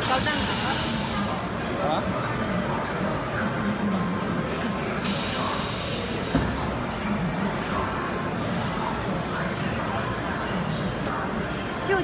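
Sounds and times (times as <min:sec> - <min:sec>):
compressed air hiss: 0:00.0 - 0:01.5, 0:05.0 - 0:06.6.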